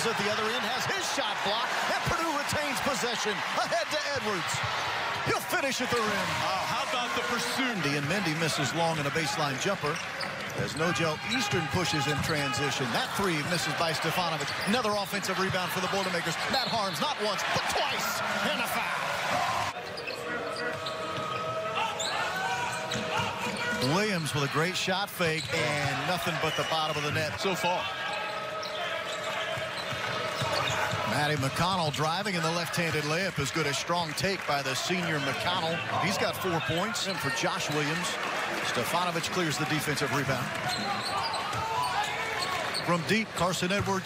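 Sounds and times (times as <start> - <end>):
commentator speaking: 0.0 - 10.0, 10.6 - 19.0, 31.1 - 40.5
crowd background: 0.0 - 44.0
sneaker squeaks: 9.9 - 12.7, 13.4 - 15.1, 19.7 - 24.5, 25.2 - 31.2, 40.5 - 43.2.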